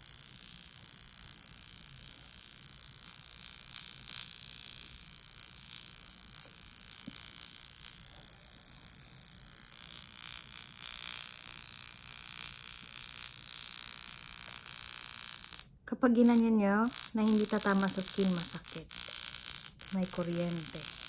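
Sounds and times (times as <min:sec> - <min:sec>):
crackling spark snaps: 0:00.9 - 0:08.3, 0:09.6 - 0:21.0
facial wand high hiss: 0:13.2 - 0:14.2, 0:16.3 - 0:21.0.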